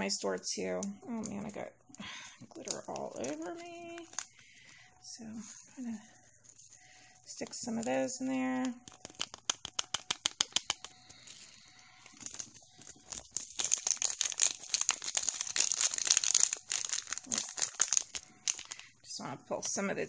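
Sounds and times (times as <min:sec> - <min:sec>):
glitter crinkling and ticking: 0:00.0 - 0:20.0.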